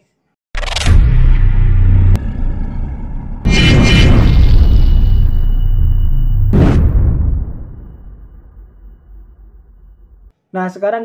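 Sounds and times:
loud deep rumble: 0:00.6 - 0:10.3.

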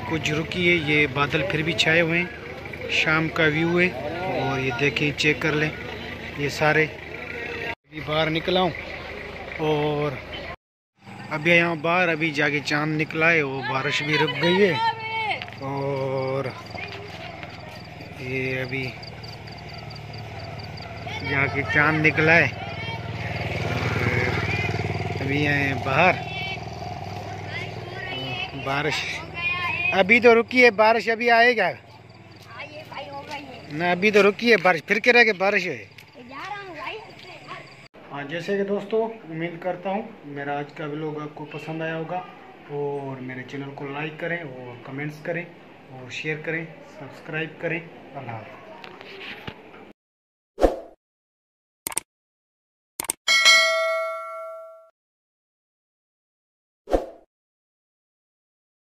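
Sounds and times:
engine hum: 0:00.0 - 0:37.9
notification bell ding: 0:53.3 - 0:54.9.

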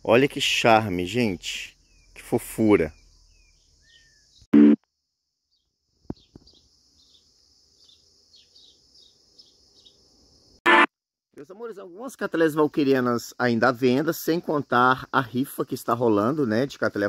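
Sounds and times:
birds chirping: 0:01.2 - 0:04.5.

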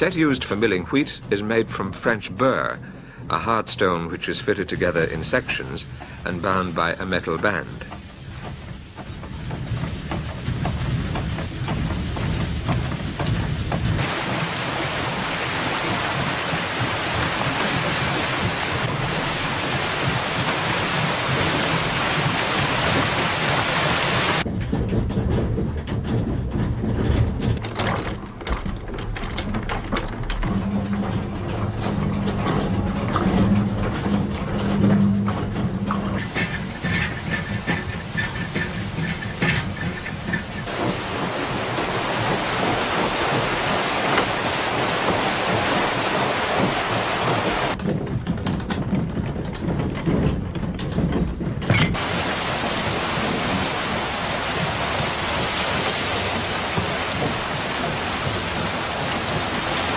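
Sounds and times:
rushing water: 0:00.0 - 0:24.5, 0:27.2 - 0:47.8, 0:50.9 - 0:59.9
mill machinery rumbling clatter: 0:00.0 - 0:59.9.

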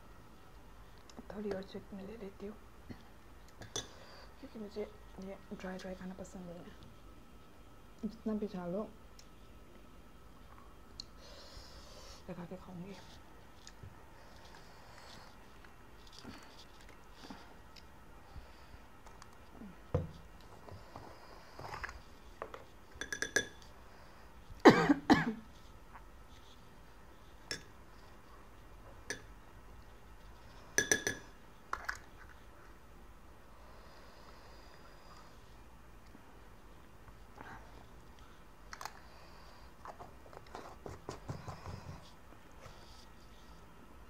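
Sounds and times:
person coughing: 0:24.6 - 0:25.4.

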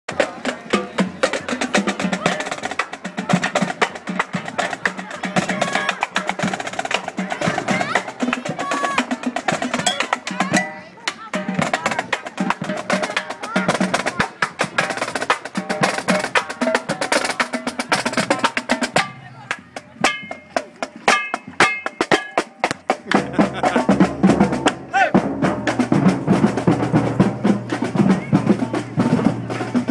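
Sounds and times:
snare and bass drums playing: 0:00.1 - 0:29.9.

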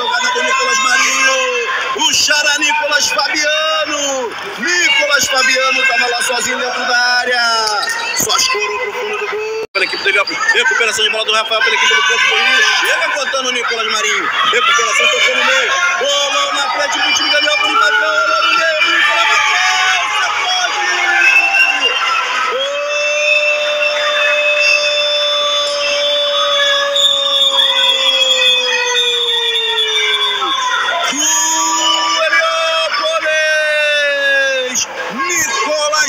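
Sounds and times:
shouting: 0:00.0 - 0:09.7, 0:10.4 - 0:36.0
crowd cheering: 0:00.0 - 0:36.0.

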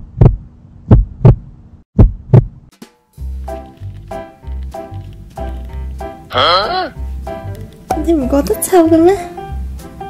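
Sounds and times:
heartbeat double thumps: 0:00.0 - 0:02.7
music with low beat: 0:02.0 - 0:10.0.

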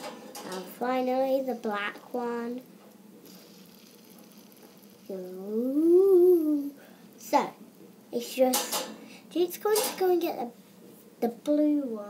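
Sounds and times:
fidget spinner whirring: 0:00.0 - 0:08.7.

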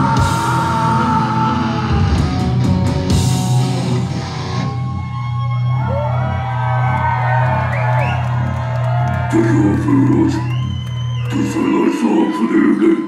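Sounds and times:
crowd whooping: 0:00.0 - 0:13.0.

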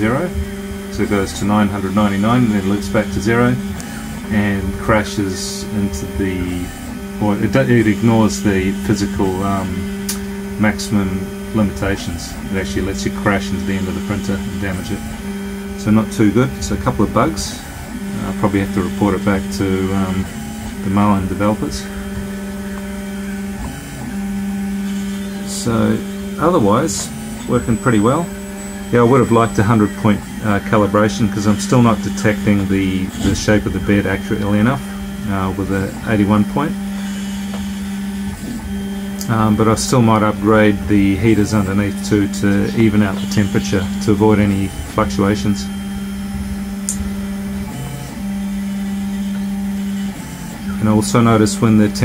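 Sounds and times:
three d printer motors humming: 0:00.0 - 0:52.0.

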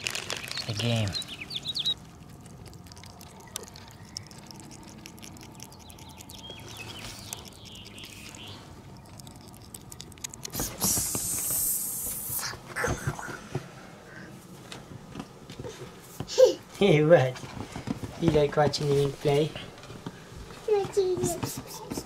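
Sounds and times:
mink chewing meat: 0:00.0 - 0:11.2
loud hissing rush: 0:10.5 - 0:12.7.

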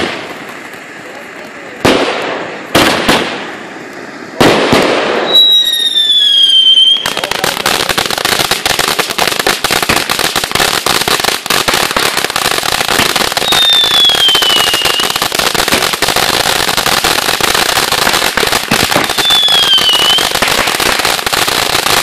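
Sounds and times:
firework hissing and crackling: 0:00.0 - 0:22.0
falling firework whistles: 0:02.8 - 0:07.4, 0:12.8 - 0:22.0.

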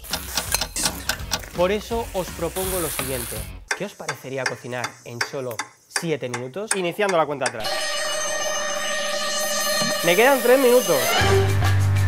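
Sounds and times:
steady electronic tone: 0:07.6 - 0:11.5.

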